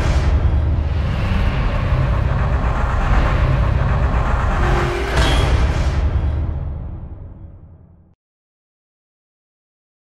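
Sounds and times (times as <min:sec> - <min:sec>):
dense bass rumble: 0:00.0 - 0:07.4.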